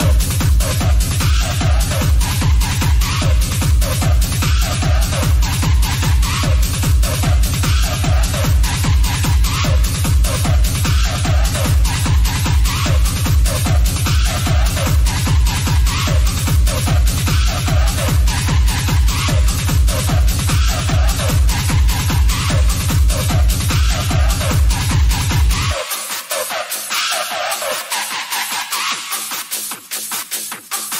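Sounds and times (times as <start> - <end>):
techno kick drum: 0.0 - 30.9.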